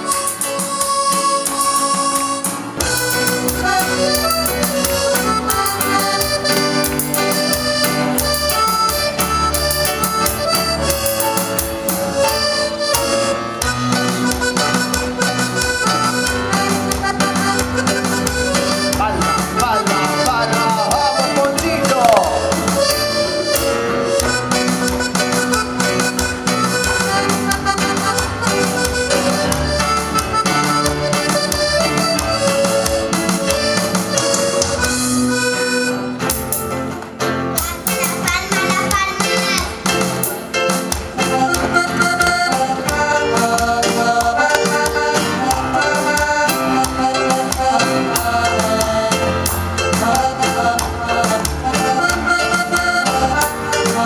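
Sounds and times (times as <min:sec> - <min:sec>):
accordion playing lively tune: 0:00.0 - 0:54.0.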